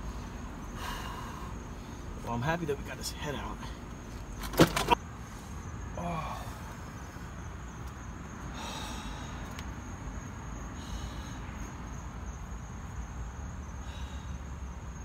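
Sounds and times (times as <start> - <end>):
crickets trilling: 0.0 - 15.0
low steady rumble: 0.0 - 15.0.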